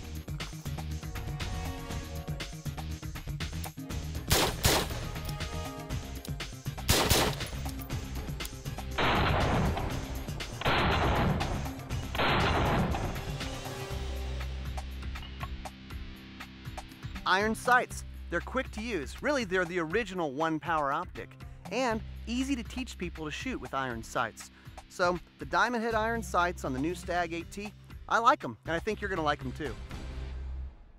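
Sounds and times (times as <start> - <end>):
background music: 0.0 - 30.9
rapid rifle fire: 4.3 - 5.1, 6.8 - 7.6, 9.0 - 13.3
rifle shots: 4.3 - 5.2, 6.8 - 7.6, 9.0 - 13.4.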